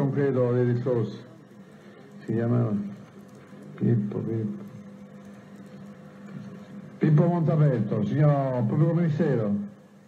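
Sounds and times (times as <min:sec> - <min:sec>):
recording hum and hiss: 0:00.0 - 0:10.0.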